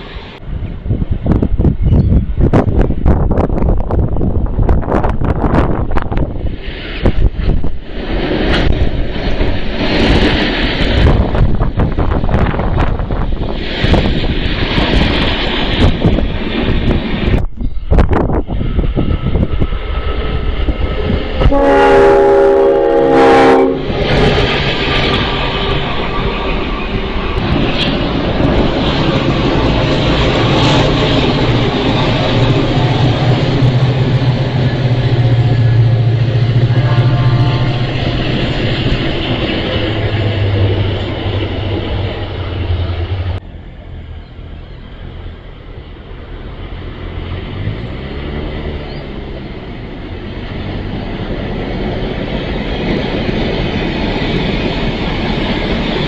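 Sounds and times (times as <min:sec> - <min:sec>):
freight train wheels rumbling on rails: 0:00.0 - 0:56.0
diesel engine droning: 0:20.4 - 0:52.0
locomotive horn chord: 0:21.4 - 0:24.0, 0:36.6 - 0:38.2.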